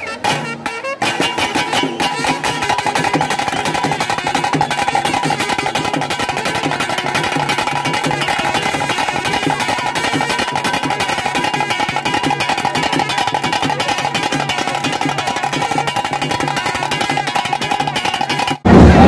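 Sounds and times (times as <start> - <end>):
fast steady drumming: 0.0 - 19.0.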